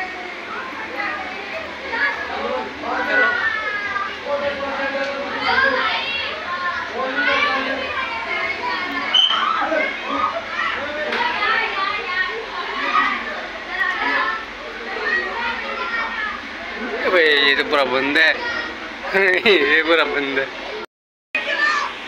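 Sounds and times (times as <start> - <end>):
children chattering and calling out: 0.0 - 22.0.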